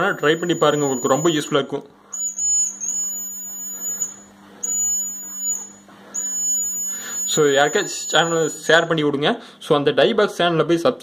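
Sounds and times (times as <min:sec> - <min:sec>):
high-pitched electronic buzzer: 0:00.0 - 0:08.9.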